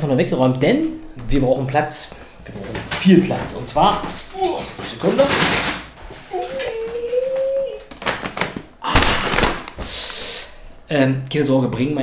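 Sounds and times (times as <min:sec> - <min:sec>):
paper bag rustling: 0:02.4 - 0:10.0
paper crinkle: 0:02.5 - 0:09.9.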